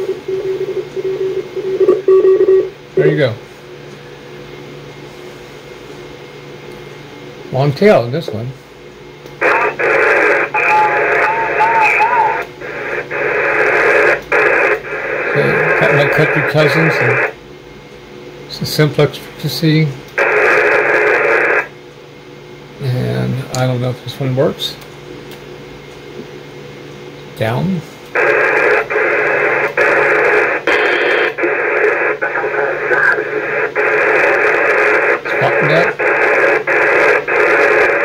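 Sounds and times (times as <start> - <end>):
low machine hum: 0.0 - 38.0
radio static hiss: 9.4 - 17.4, 18.5 - 21.7, 27.4 - 38.0.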